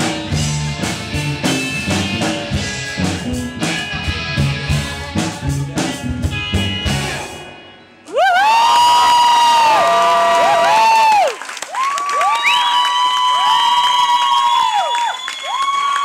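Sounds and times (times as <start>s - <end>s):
audience cheering with whoops: 8.1s - 16.0s.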